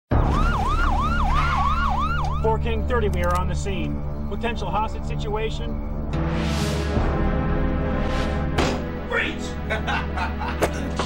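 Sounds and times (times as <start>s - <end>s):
police siren yelping: 0.1s - 2.9s.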